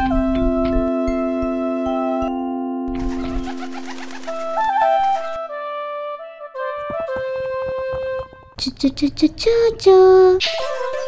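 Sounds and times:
background music with flute: 0:00.0 - 0:08.4
dove's wings fluttering: 0:03.0 - 0:05.4.

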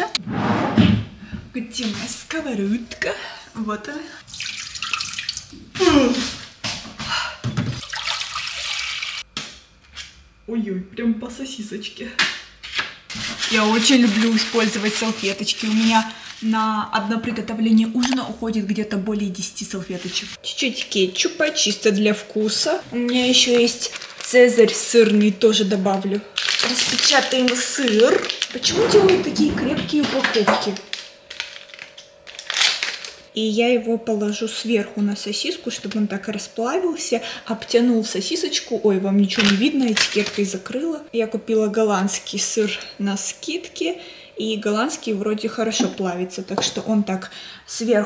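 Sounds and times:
water pouring into saucepan: 0:04.2 - 0:05.6, 0:07.8 - 0:09.2
plastic crinkling: 0:13.1 - 0:16.6, 0:23.0 - 0:29.2, 0:30.2 - 0:33.3, 0:39.3 - 0:40.6
scissors cutting plastic wrapper: 0:23.2 - 0:25.4, 0:26.4 - 0:28.6, 0:30.2 - 0:33.3, 0:39.4 - 0:40.6.

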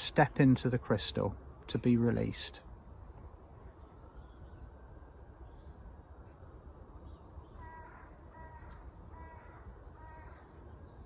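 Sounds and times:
bird calling: 0:07.1 - 0:11.0.

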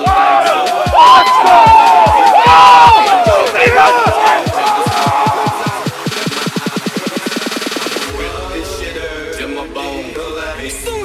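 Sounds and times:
men shouting in celebration: 0:00.0 - 0:06.2
music with deep bass beat: 0:00.0 - 0:11.0.

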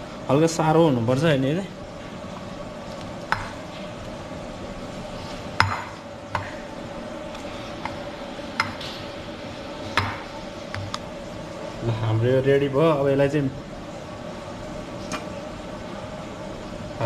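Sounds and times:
steady hum: 0:00.0 - 0:17.0
plate knocking on table: 0:05.6 - 0:06.5, 0:10.0 - 0:10.2.

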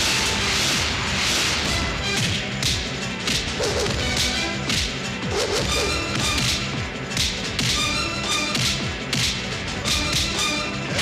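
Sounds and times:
background music score: 0:00.0 - 0:11.0
punch and kick hits: 0:08.6 - 0:10.3.

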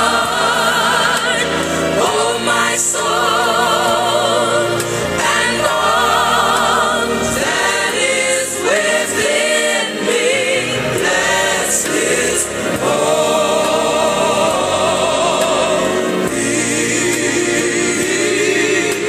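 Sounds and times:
choir singing gospel: 0:00.0 - 0:19.0
instrumental backing: 0:00.0 - 0:19.0.

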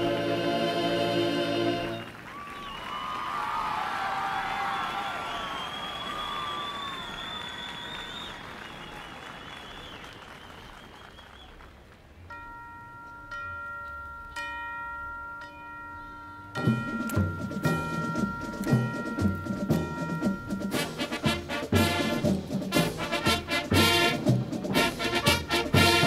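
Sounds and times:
whistling: 0:01.9 - 0:11.8
audience applauding: 0:01.9 - 0:12.1
ringing bell tones: 0:12.3 - 0:21.1.

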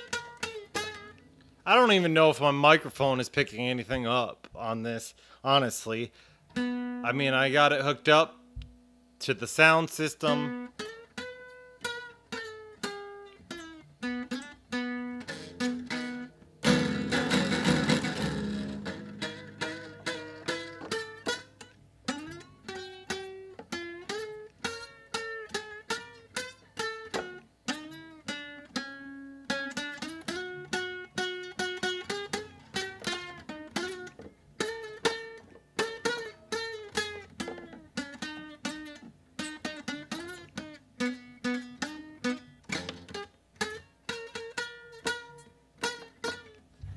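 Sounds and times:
acoustic guitar slow melody: 0:00.0 - 0:01.8, 0:06.2 - 0:07.1, 0:10.2 - 0:46.9
strummed guitar chord: 0:10.0 - 0:46.9.

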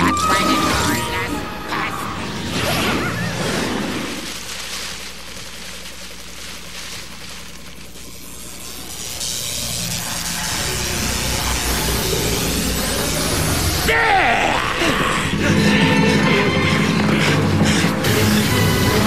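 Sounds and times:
magical energy blast crackling: 0:02.2 - 0:13.9
dramatic background music: 0:10.1 - 0:19.0.

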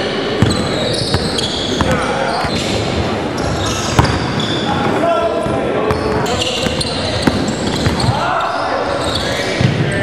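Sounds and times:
shoe squeaks: 0:00.0 - 0:05.0, 0:05.9 - 0:10.0
basketball bouncing on court: 0:00.4 - 0:02.7, 0:03.4 - 0:04.5, 0:05.9 - 0:08.2
shouts and chatter: 0:04.6 - 0:10.0.

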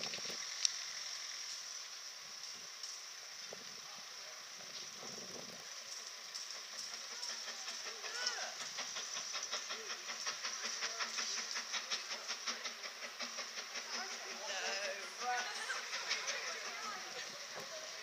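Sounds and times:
steam locomotive exhaust chuffs: 0:00.0 - 0:18.0.

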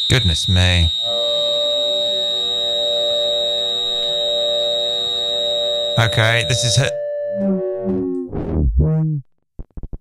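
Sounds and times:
high feedback whistle: 0:00.0 - 0:08.1
low held feedback tones: 0:00.0 - 0:08.5.

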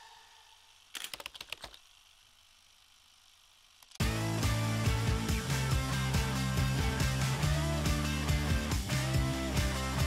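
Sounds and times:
rattle of sharp clicks: 0:00.9 - 0:01.9.

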